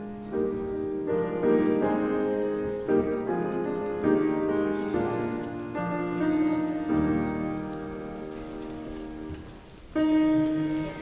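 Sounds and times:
congregation rustling and shuffling: 0.0 - 11.0
grand piano chord: 0.0 - 11.0.

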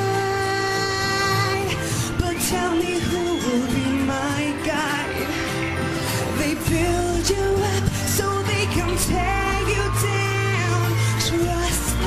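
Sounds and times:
woman singing a pop ballad: 0.0 - 12.0.

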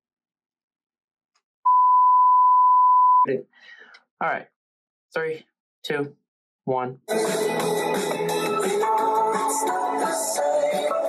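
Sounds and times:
censor beep tone: 1.6 - 3.3.

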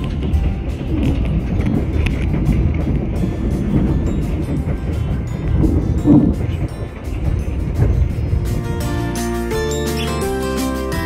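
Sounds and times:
music with held chords: 0.0 - 11.0
train rumbling: 0.0 - 11.0.

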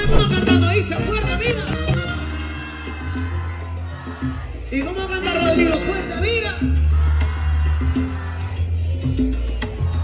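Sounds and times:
salsa band playing: 0.0 - 10.0.

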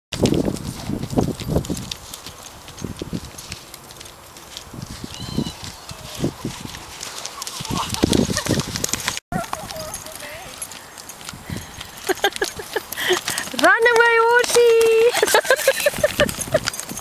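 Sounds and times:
horse hoofbeats on grass: 0.1 - 17.0.

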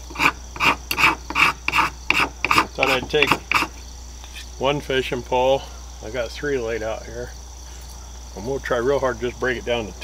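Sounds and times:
knife scraping wood: 0.0 - 3.8.

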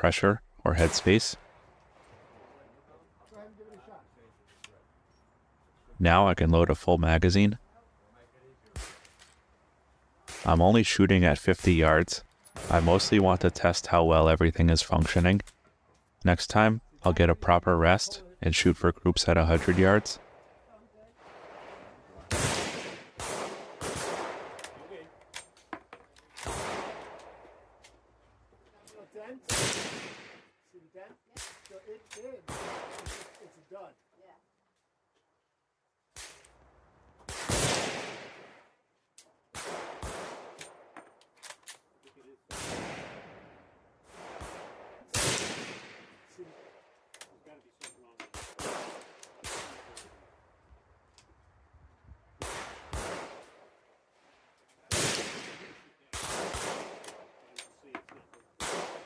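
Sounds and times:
rifle shots echoing: 12.6 - 13.3, 19.5 - 25.1, 26.4 - 27.7, 29.5 - 30.5, 32.5 - 33.4, 37.3 - 38.7, 39.5 - 41.0, 42.5 - 46.9, 48.3 - 50.2, 52.4 - 53.8, 54.9 - 57.5, 58.6 - 59.0
neighbouring rifle shots: 21.2 - 28.0, 31.4 - 33.4, 44.1 - 50.2, 54.8 - 59.0.

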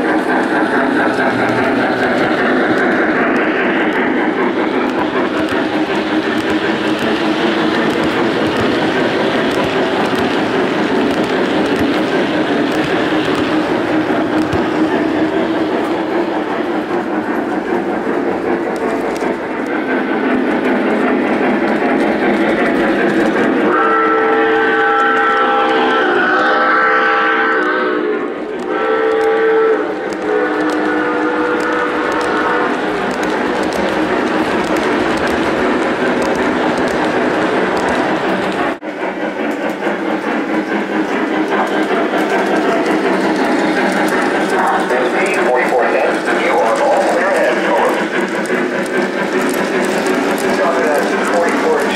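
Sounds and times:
model train running on track: 0.0 - 51.9
electronic steam whistle: 23.7 - 32.8.

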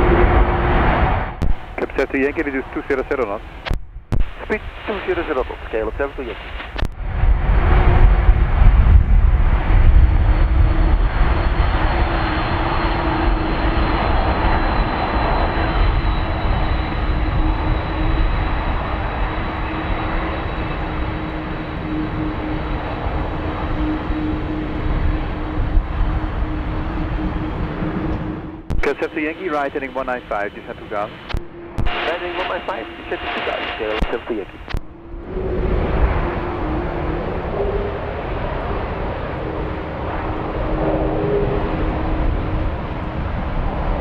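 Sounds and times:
jet engines running: 0.0 - 44.0.

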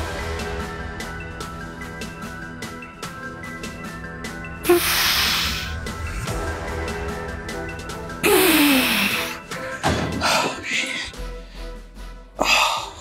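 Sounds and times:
background music with steady beat: 0.0 - 13.0.

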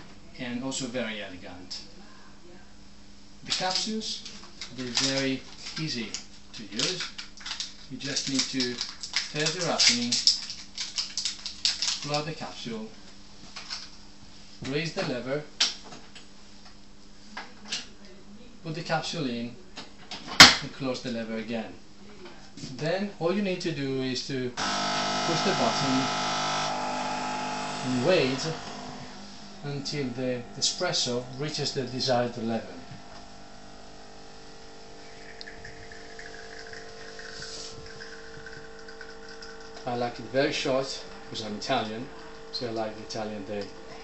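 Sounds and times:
low hum: 24.6 - 40.4.

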